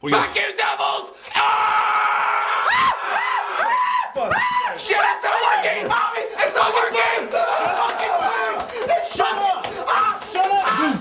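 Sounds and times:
man screaming: 0:01.3 - 0:11.0.

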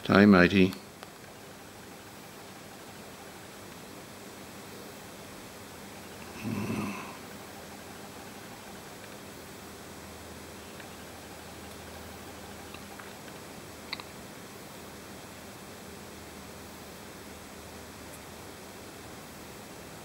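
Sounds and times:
faint background hiss: 0:00.0 - 0:20.0
short low grunt: 0:06.2 - 0:07.2.

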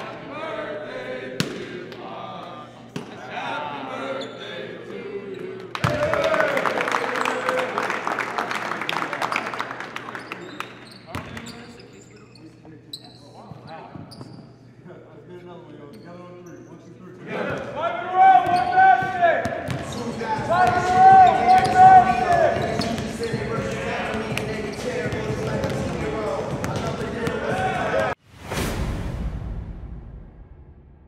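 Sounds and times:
players calling out: 0:17.2 - 0:28.2
basketballs bouncing on hardwood: 0:18.5 - 0:28.1
long held shouts: 0:20.4 - 0:22.6.

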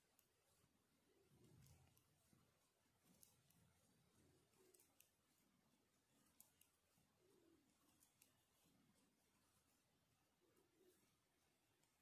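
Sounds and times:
metal knitting needles clicking: 0:00.0 - 0:00.6, 0:01.4 - 0:09.6.

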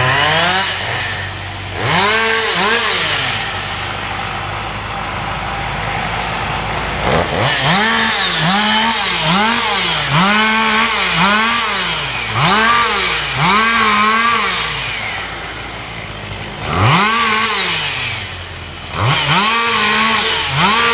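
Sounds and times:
chainsaw idling: 0:00.0 - 0:20.9
chainsaw revving: 0:00.0 - 0:20.9.

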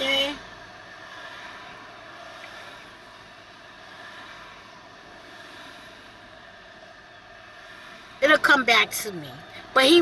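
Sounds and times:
car cabin hum: 0:00.0 - 0:10.0.

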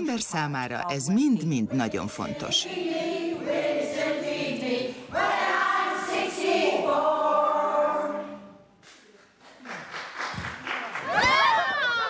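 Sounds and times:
choir singing held notes: 0:01.7 - 0:08.6.

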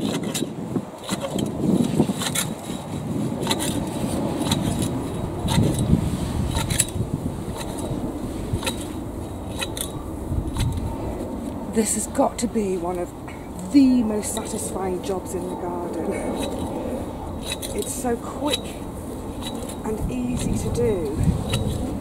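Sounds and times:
cut grass rustling: 0:00.0 - 0:12.9, 0:13.6 - 0:22.0
shears blades snipping: 0:00.0 - 0:13.0, 0:13.6 - 0:22.0.

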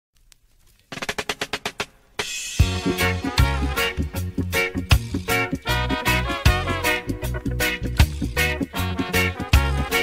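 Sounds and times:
drum fill: 0:00.9 - 0:10.0.

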